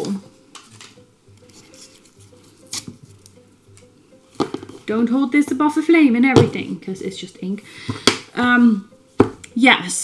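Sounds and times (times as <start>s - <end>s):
plastic bottle handling noises: 4.3s - 4.9s.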